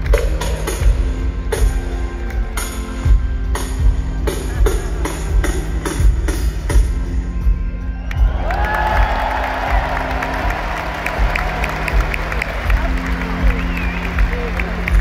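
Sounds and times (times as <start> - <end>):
live rock band playing: 0.0 - 15.0
crowd cheering and whistling: 7.9 - 15.0.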